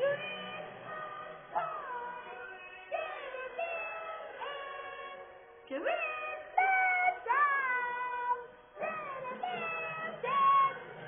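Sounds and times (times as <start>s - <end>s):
high-pitched singing from television: 0.0s - 11.0s.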